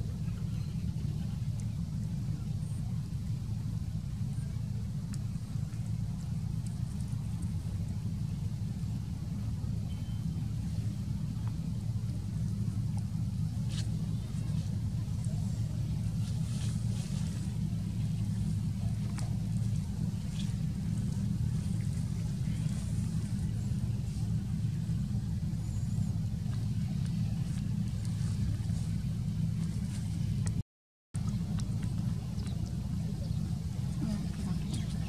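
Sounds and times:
low motor drone: 0.0 - 30.6, 31.2 - 35.0.

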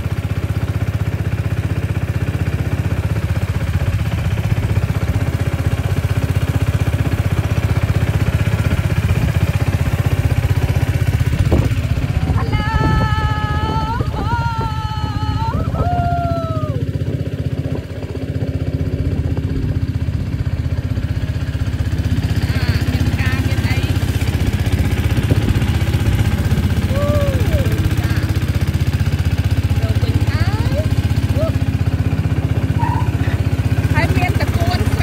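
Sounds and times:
motorboat engine running: 0.0 - 35.0.

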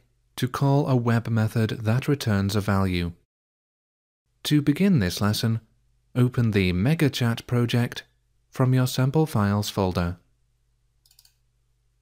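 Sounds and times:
computer mouse double-click: 11.0 - 11.4.

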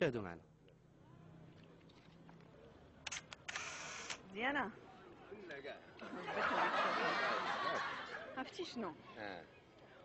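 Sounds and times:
camera shutter clicks: 3.0 - 4.2
film advance winding: 3.1 - 4.2.

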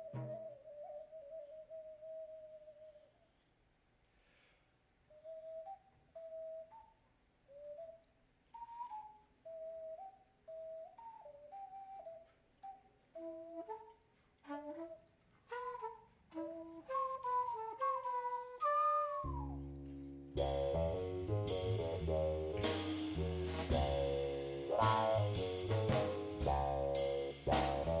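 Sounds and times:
flute-like melody: 0.0 - 3.4, 5.1 - 28.0
lower harmony line: 19.7 - 28.0.

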